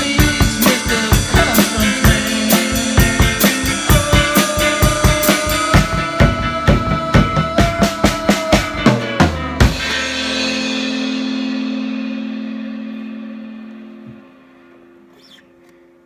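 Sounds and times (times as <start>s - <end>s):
drum kit hits: 0.0s - 14.3s.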